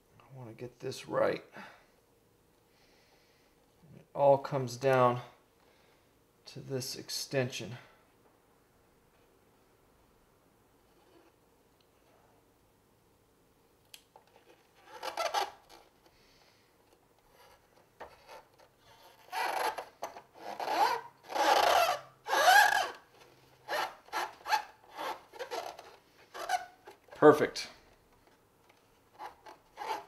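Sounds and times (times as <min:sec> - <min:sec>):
fingers rubbing plastic: 0:14.3 - 0:15.9, 0:17.2 - 0:27.2, 0:29.1 - 0:30.0.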